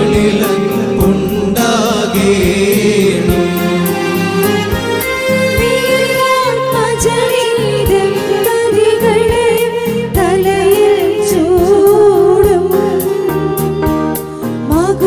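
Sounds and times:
amplified band: 0.0s - 15.0s
steady drumbeat: 0.0s - 15.0s
women singing a hymn: 5.6s - 13.2s.

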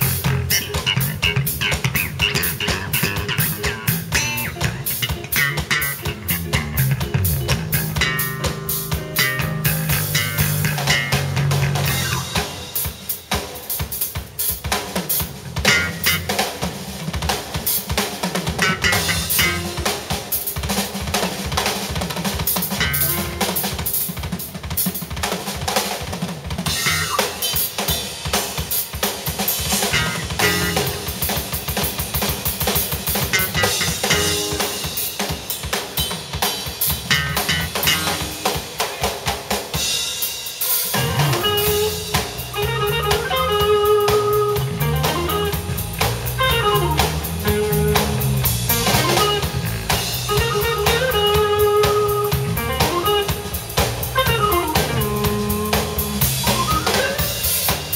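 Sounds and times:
electric guitar: 0.0s - 13.8s, 15.1s - 24.2s, 26.6s - 28.0s, 29.5s - 57.9s
drum kit playing: 0.0s - 57.9s.

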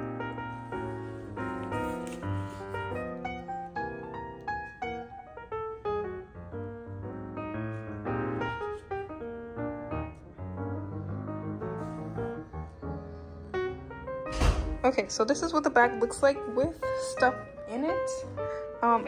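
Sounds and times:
piano music: 0.0s - 19.0s.

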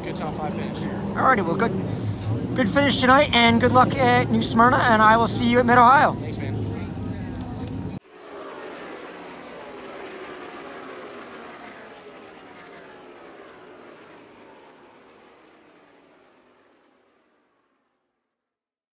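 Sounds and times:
loud trackside noise: 0.0s - 17.6s
race car engines passing: 0.0s - 17.8s.

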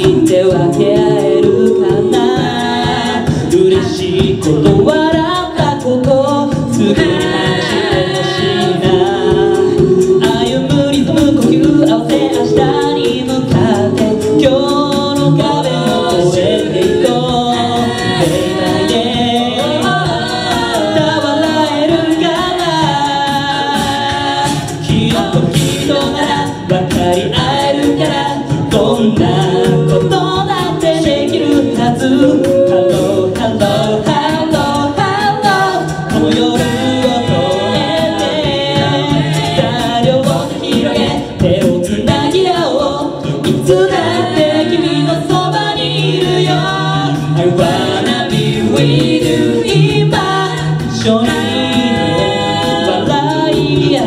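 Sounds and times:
a cappella group singing: 0.0s - 54.0s.

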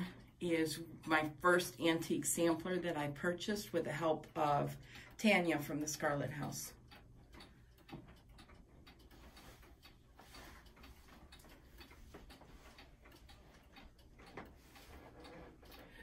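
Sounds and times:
pendulum clock ticking: 0.0s - 16.0s.

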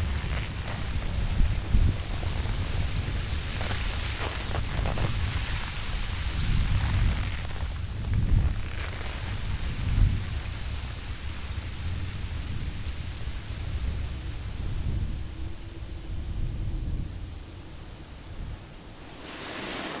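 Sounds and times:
snow sliding rumble and hiss: 0.0s - 20.0s.

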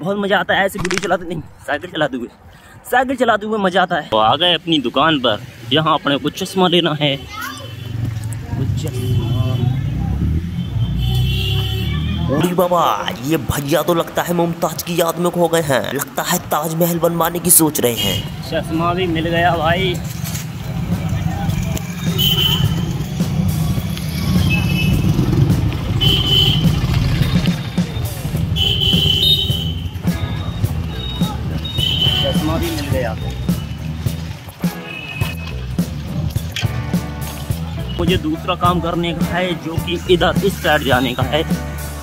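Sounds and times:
street traffic: 0.0s - 42.0s
short high beeps: 0.8s - 1.6s.

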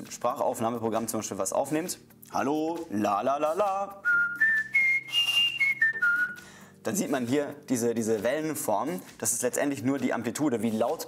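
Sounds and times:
man whistling: 3.9s - 6.5s.

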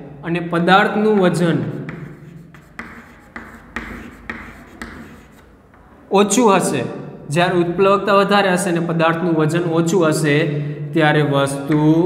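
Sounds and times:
chalk scratching on chalkboard: 1.1s - 5.6s.

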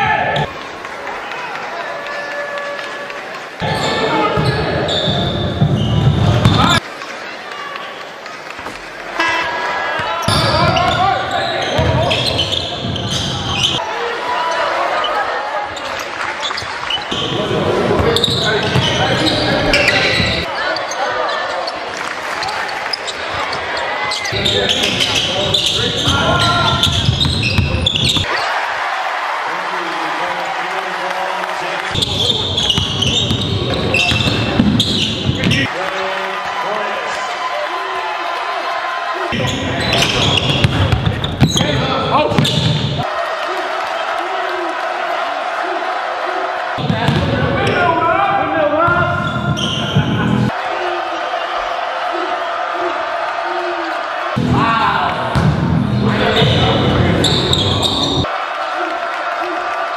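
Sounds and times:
indistinct voices in large hall: 0.0s - 59.9s.

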